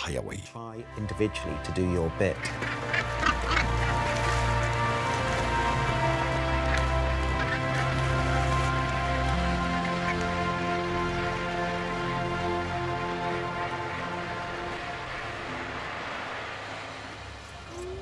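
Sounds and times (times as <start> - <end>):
background music of held chords: 0.0 - 16.4
seabird colony calling: 1.8 - 15.3.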